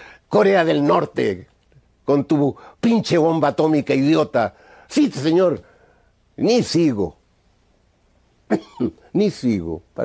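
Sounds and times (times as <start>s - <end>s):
man speaking: 0.3s - 5.6s, 6.4s - 7.2s, 8.8s - 10.0s
man coughing: 8.5s - 9.1s.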